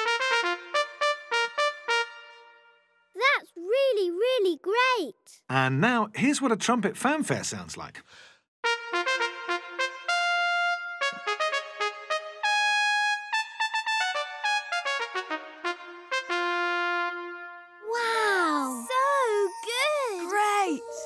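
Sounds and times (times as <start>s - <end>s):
trumpet playing a fanfare: 0.0s - 2.7s, 8.6s - 21.0s.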